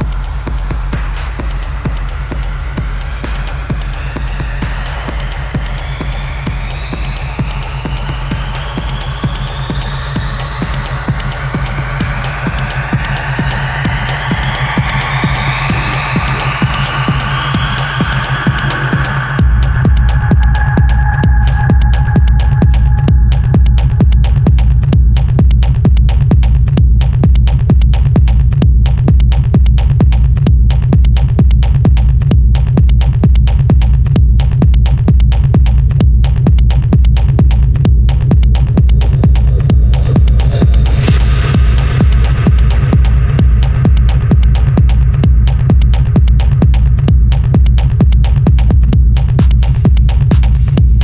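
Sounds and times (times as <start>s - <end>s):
deep heavy bass: 0.0s - 51.0s
hi-hat ticks: 0.0s - 51.0s
techno kick drum: 0.0s - 51.0s.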